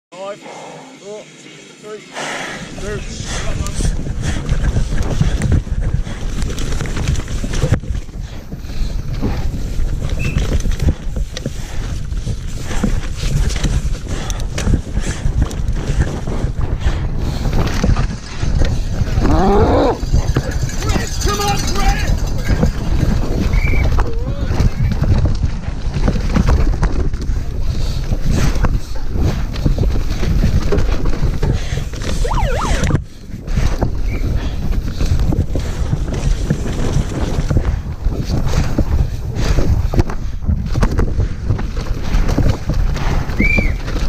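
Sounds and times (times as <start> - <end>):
wind on microphone: 2.7 - 44.0
mountain bike rattling over dirt: 2.8 - 32.2, 33.0 - 44.0.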